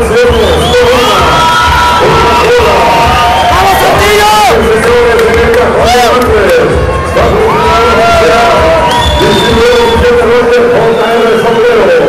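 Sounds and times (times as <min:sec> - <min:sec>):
crowd cheering and shouting: 0:00.0 - 0:12.0.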